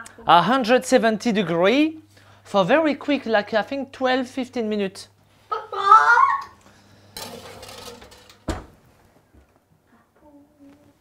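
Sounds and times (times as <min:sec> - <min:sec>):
baking tray scraping: 0:06.8 - 0:08.6
oven door thumping shut: 0:08.3 - 0:08.8.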